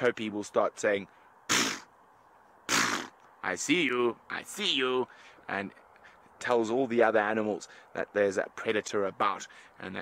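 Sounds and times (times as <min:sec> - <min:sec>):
man imitating animal snorts: 0:01.5 - 0:01.9, 0:02.7 - 0:03.2.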